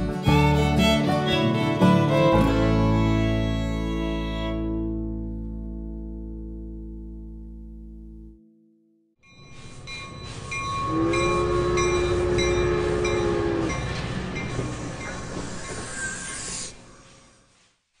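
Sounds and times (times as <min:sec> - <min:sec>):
fiddle note: 0:00.0 - 0:05.6
rumbling hissing noise: 0:14.0 - 0:17.8.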